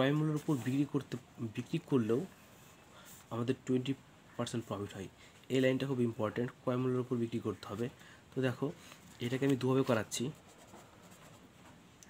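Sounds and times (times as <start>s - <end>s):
pen scratching on paper: 9.9s - 11.5s.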